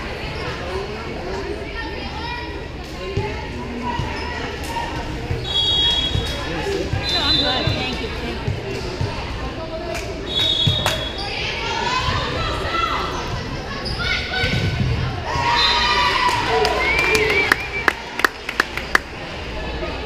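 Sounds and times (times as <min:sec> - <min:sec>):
referee whistle blasts: 0:05.4 - 0:06.3, 0:10.3 - 0:11.2.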